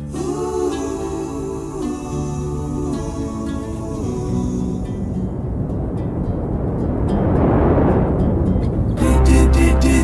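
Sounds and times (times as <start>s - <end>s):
rushing noise: 1.3s - 10.0s.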